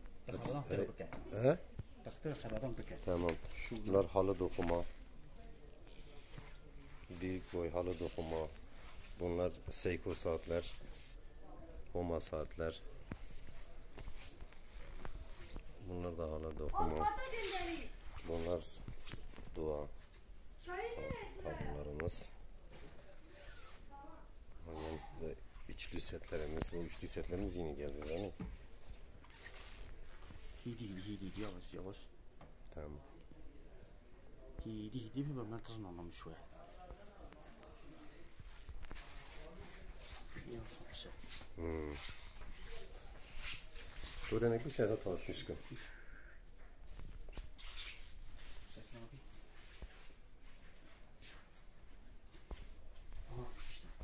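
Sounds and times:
faint room noise: 0:00.0 - 0:54.0.

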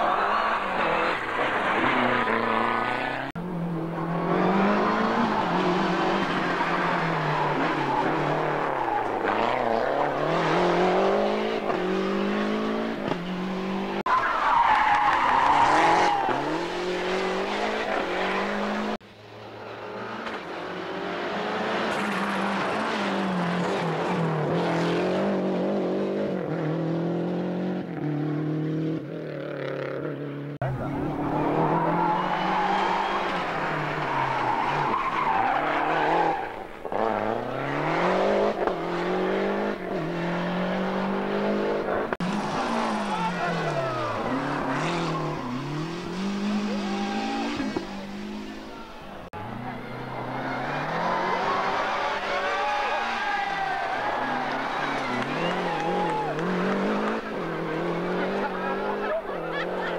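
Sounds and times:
rally car engines revving hard: 0:00.0 - 0:14.1, 0:14.9 - 0:59.9.

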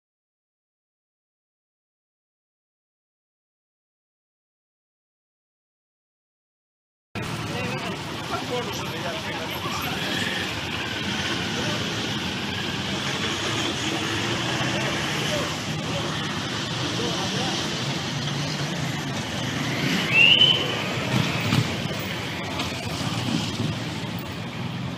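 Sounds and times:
people's voices: 0:07.2 - 0:24.9
vehicle engines running: 0:07.2 - 0:24.9.

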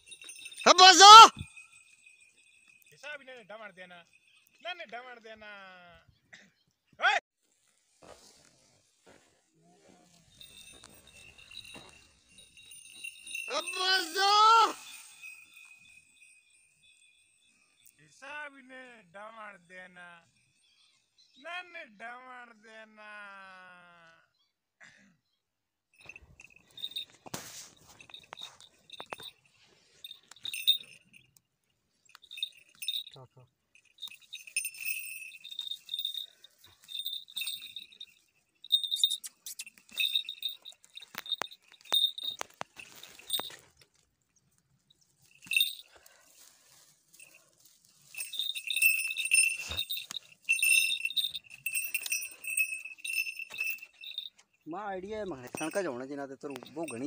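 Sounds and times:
small metal bells jingling: 0:00.0 - 0:05.4, 0:09.9 - 0:18.6, 0:26.0 - 0:57.0.

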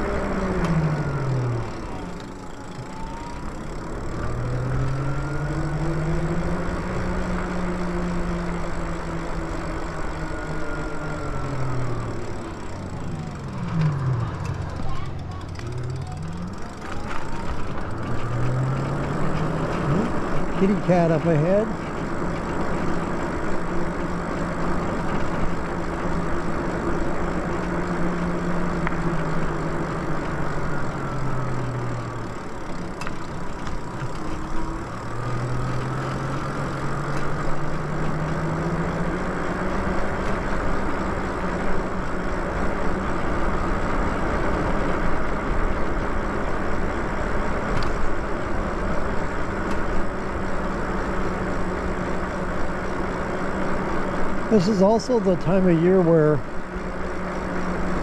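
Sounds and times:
electric motor whining: 0:00.0 - 0:45.3
road and wind noise: 0:00.0 - 0:58.0.

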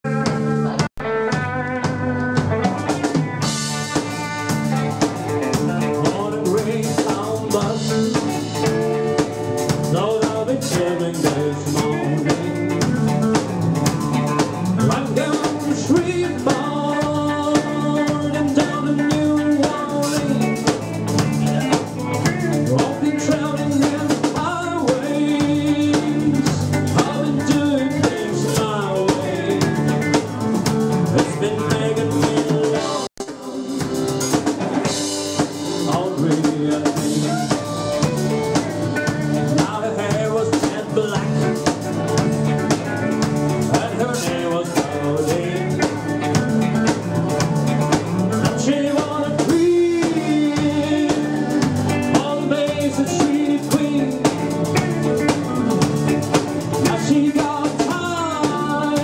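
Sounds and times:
drum kit steady beat: 0:00.0 - 0:59.0
electric guitars: 0:00.0 - 0:59.0.

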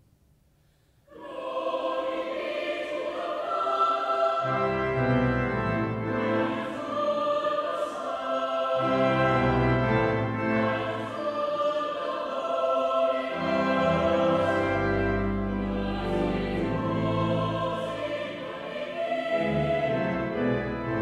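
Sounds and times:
choir singing: 0:01.1 - 0:21.0.

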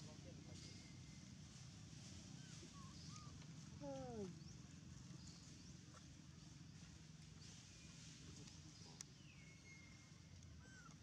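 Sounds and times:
small birds chirping: 0:02.3 - 0:11.0.

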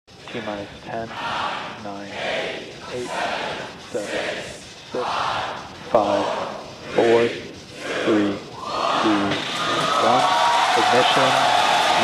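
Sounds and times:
rocket engines rushing roar: 0:00.1 - 0:12.0
crowd cheering and shouting: 0:01.0 - 0:12.0.

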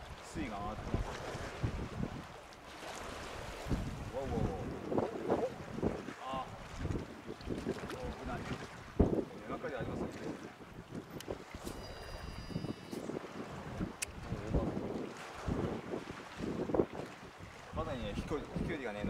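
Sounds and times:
wind on microphone: 0:00.0 - 0:19.0
fishing reel whirring: 0:11.6 - 0:13.2
sharp click of rod: 0:13.9 - 0:14.2.

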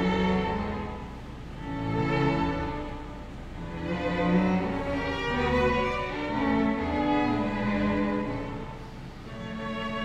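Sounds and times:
string ensemble playing: 0:00.0 - 0:10.0.

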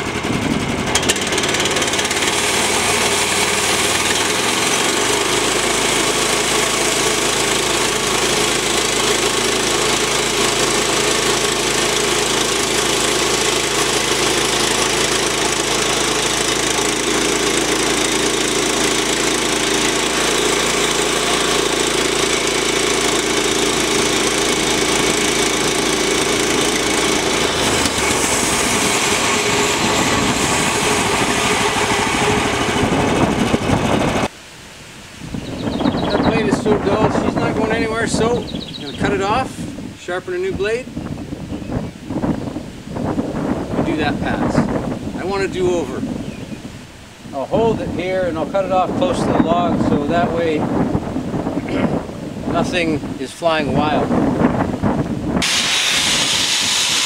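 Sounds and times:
sawmill gas engine running: 0:00.0 - 0:34.4, 0:51.4 - 0:57.0
saw blade cutting log: 0:00.9 - 0:33.7, 0:55.4 - 0:57.0.

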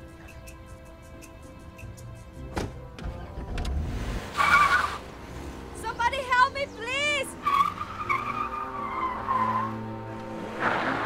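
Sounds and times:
van engine accelerating: 0:02.7 - 0:11.0
tyres squealing: 0:06.2 - 0:09.9.

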